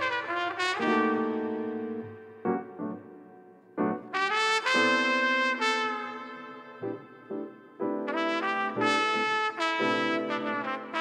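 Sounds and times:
smooth jazz with horn lead: 0.0s - 2.7s, 4.1s - 11.0s.

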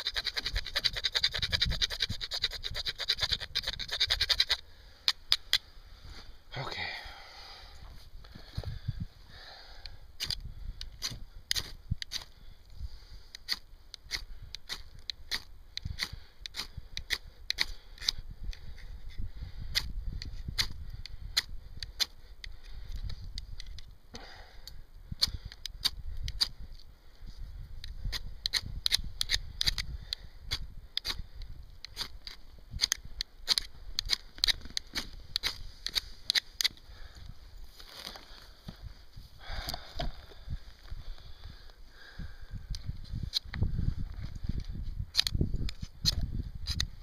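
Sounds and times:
ferro rod scraped by striker: 0.0s - 5.6s, 13.3s - 22.6s, 27.8s - 29.9s, 31.8s - 36.8s, 45.1s - 47.0s
wind rumble on microphone: 0.3s - 4.3s, 7.6s - 13.3s, 14.1s - 22.0s, 22.6s - 36.2s, 36.8s - 47.0s.

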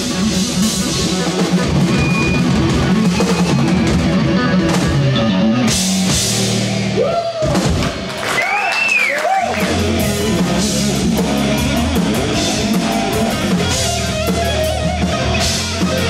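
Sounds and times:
distorted electric guitar: 0.0s - 8.2s, 9.3s - 16.0s
drum kit with cymbals: 0.0s - 8.2s, 9.3s - 16.0s.

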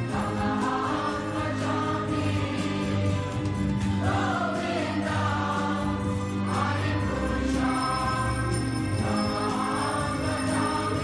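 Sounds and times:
group singing devotional chant: 0.0s - 3.3s, 4.0s - 7.8s.

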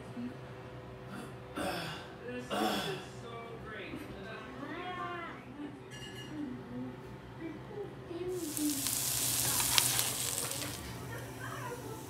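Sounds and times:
food sizzling in a pan: 8.3s - 12.0s.

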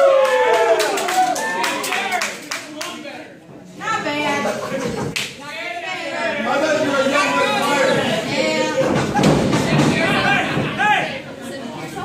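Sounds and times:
crowd clapping in rhythm: 0.0s - 3.0s.

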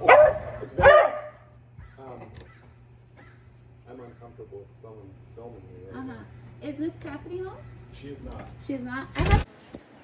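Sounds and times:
dogs barking: 0.0s - 2.6s.

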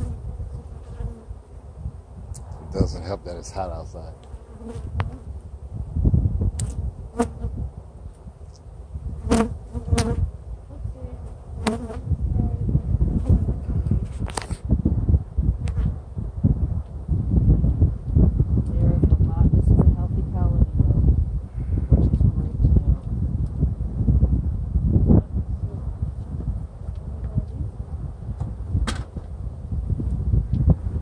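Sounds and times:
honeybees buzzing: 0.0s - 1.7s, 4.2s - 5.4s, 9.2s - 12.2s.

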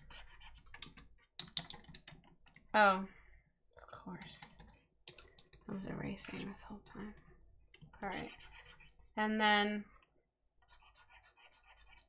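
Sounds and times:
computer keys clicking: 0.7s - 2.6s.

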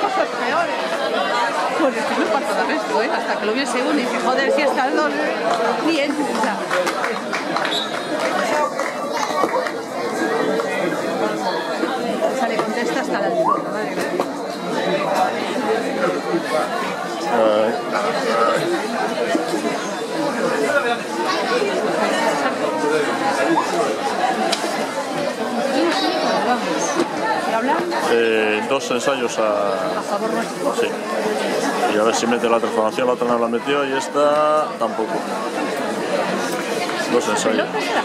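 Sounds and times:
overlapping chatter of spectators: 0.0s - 38.0s.

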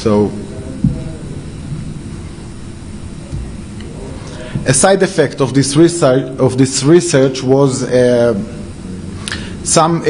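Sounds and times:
room noise rumble and hiss: 0.0s - 10.0s.

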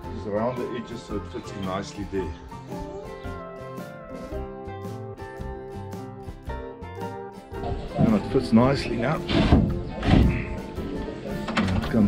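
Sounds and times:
background music with steady tones: 0.0s - 12.0s
wood knocking on wood: 9.2s - 10.5s.

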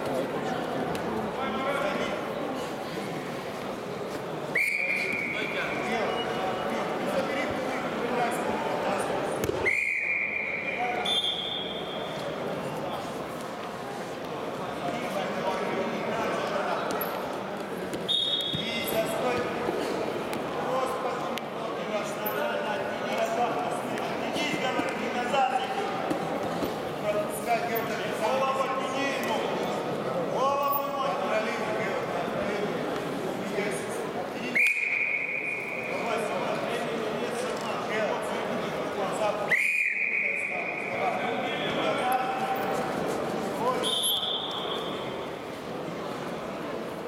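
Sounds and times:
voices shouting in echoing hall: 4.3s - 13.2s, 18.1s - 46.8s
referee whistle blasts: 4.5s - 5.6s, 9.6s - 12.2s, 18.1s - 18.7s, 34.5s - 36.0s, 39.5s - 41.0s, 43.8s - 45.1s.

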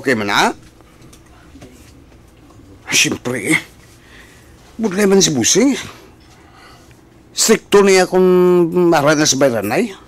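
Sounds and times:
faint background hum: 0.0s - 10.0s
man speaking: 2.8s - 3.8s, 4.8s - 6.0s, 7.4s - 10.0s.

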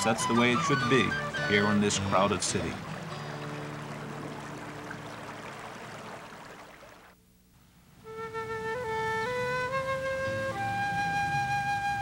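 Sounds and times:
river water flowing: 0.0s - 7.2s.

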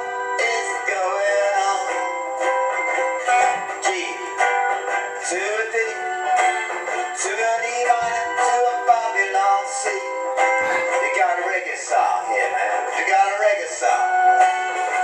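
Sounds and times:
man singing: 0.0s - 2.2s, 3.2s - 15.0s
acoustic guitar strumming: 0.0s - 15.0s.

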